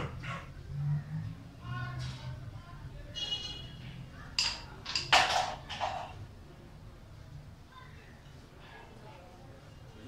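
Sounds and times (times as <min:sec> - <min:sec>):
carrom pieces clacking on board: 0:04.4 - 0:06.2.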